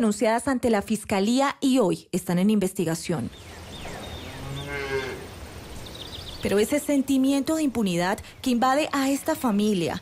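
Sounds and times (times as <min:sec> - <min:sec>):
birds chirping: 0:03.0 - 0:10.0
cow mooing: 0:03.9 - 0:05.3.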